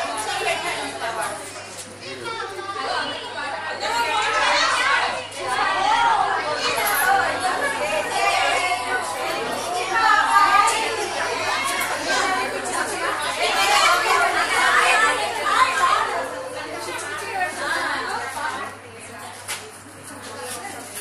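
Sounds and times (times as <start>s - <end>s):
women chattering: 0.0s - 21.0s.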